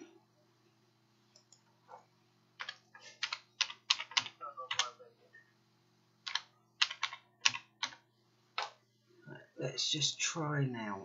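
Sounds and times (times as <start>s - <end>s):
faint steady hum: 0.0s - 11.0s
computer keyboard typing: 2.6s - 5.0s, 6.2s - 8.8s.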